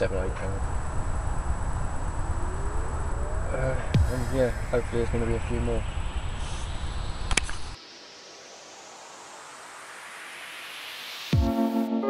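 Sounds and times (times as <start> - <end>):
low rumbling on microphone: 0.0 - 7.8
faint hiss: 0.0 - 11.3
sharp click: 7.2 - 7.7.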